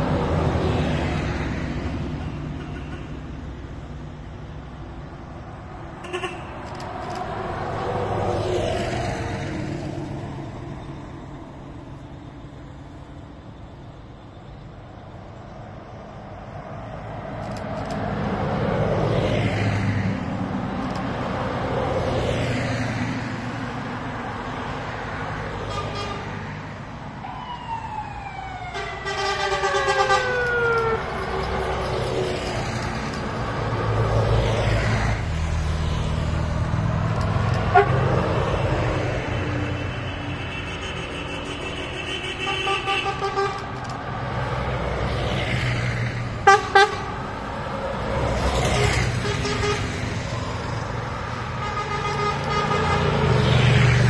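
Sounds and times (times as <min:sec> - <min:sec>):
bus engine rumble: 0:00.0 - 0:27.2, 0:28.7 - 0:54.0
vehicles driving past: 0:00.0 - 0:54.0
car and bus horns: 0:02.0 - 0:03.4, 0:06.0 - 0:07.2, 0:25.6 - 0:26.5, 0:28.6 - 0:31.8, 0:37.2 - 0:44.5, 0:46.3 - 0:53.9.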